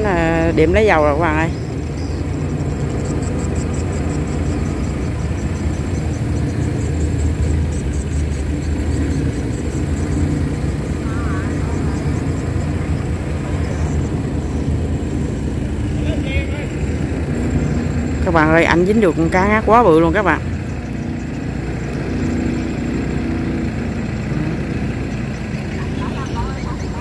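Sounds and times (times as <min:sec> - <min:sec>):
excavator diesel engine running: 0:00.0 - 0:27.0.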